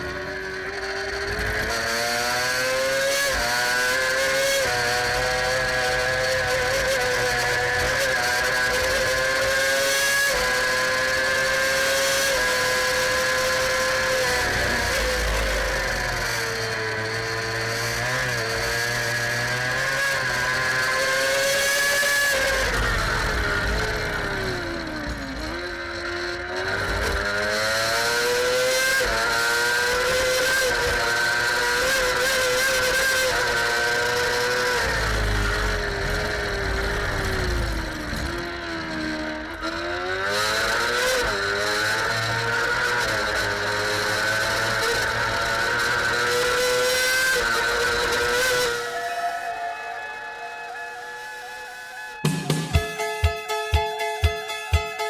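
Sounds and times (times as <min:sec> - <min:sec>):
racing engine at high revs: 0:00.0 - 0:55.0.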